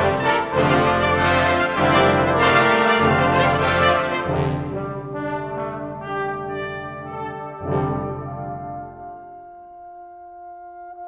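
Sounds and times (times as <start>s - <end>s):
brass band playing: 0.0s - 9.3s.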